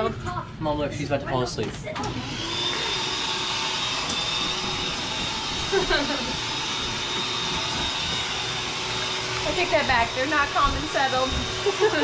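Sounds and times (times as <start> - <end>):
electric air pump running: 1.8 - 12.0.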